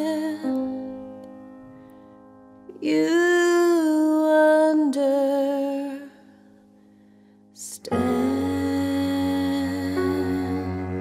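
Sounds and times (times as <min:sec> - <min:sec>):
woman singing long wordless note: 0:02.8 - 0:06.3, 0:07.6 - 0:11.0.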